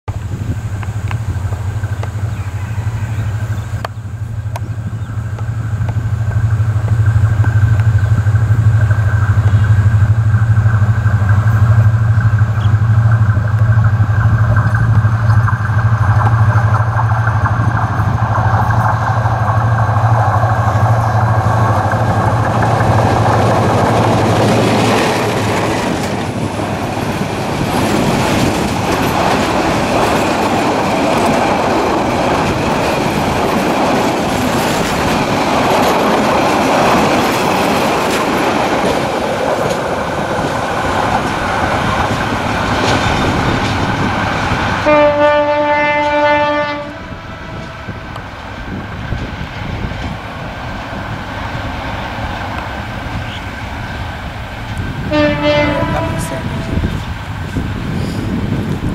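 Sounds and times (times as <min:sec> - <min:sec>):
locomotive engine droning: 0:00.1 - 0:58.9
train wheels clattering: 0:03.1 - 0:58.9.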